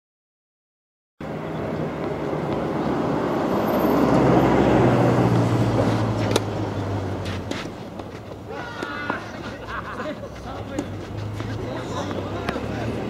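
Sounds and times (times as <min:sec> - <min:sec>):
vehicle engine passing by: 0:01.2 - 0:08.3, 0:09.2 - 0:13.0
racket hitting tennis ball: 0:05.8 - 0:12.7.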